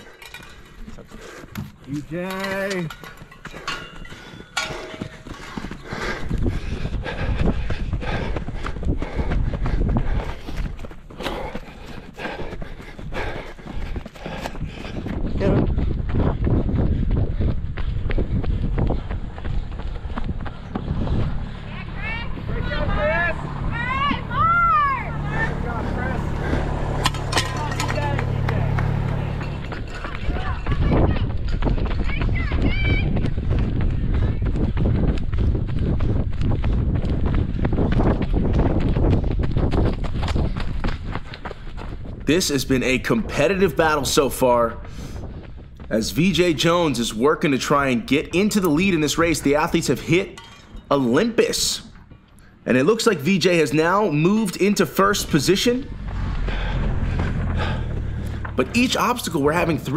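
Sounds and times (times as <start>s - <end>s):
running footsteps on dirt trail: 0.0s - 59.9s.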